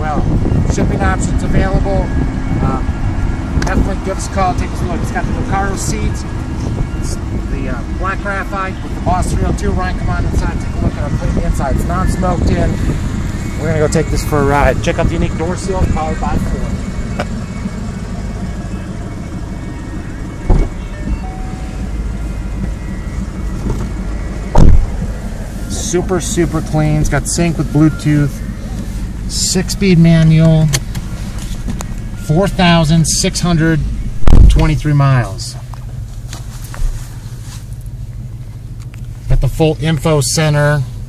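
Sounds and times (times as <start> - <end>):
car engine idling: 0.0 - 41.0
steady low rumble: 0.0 - 41.0
car door shutting: 20.4 - 21.7, 23.5 - 25.2.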